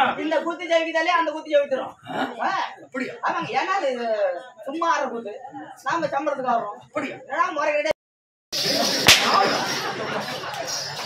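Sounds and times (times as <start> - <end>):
whip crack: 8.9 - 9.7.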